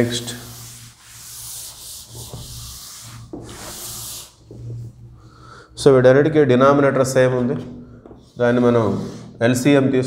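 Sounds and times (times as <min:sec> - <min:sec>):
duster rubbing on blackboard: 0:00.0 - 0:05.0.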